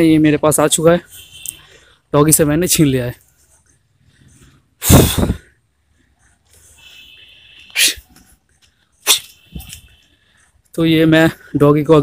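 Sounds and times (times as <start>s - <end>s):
dog sneezing: 7.7s - 8.1s, 9.0s - 9.4s.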